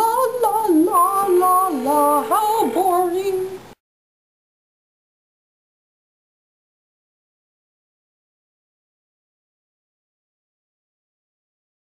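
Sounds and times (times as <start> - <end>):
woman singing wordless tune: 0.0 - 3.8.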